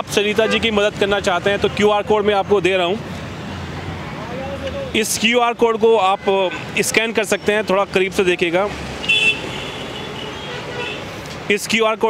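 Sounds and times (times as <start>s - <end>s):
road traffic noise: 0.0s - 12.0s
vehicle horn: 9.0s - 11.1s.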